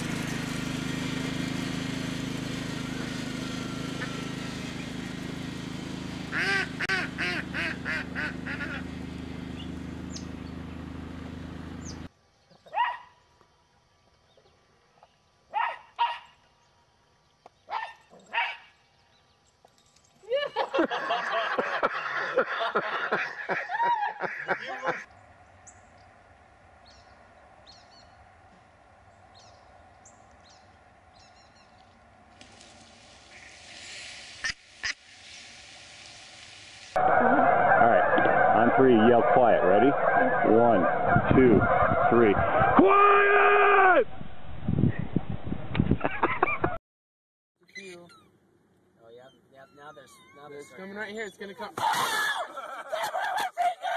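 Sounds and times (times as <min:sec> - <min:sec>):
geese honking: 0:02.4 - 0:10.3, 0:23.0 - 0:25.1, 0:37.0 - 0:42.8
duck quacks: 0:06.3 - 0:08.9, 0:24.2 - 0:25.0.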